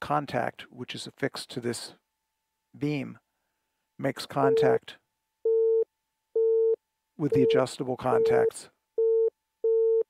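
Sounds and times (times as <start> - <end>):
morse code beeps: 4.4 - 4.8, 6.4 - 10.0.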